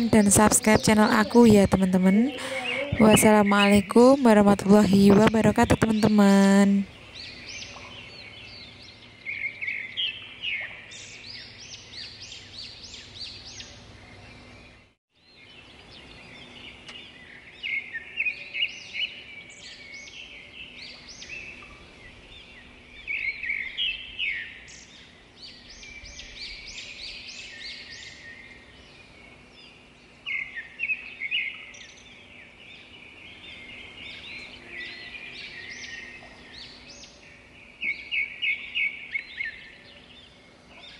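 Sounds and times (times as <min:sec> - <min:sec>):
faint outdoor background: 0:00.0 - 0:40.9
small birds chirping: 0:00.0 - 0:40.9.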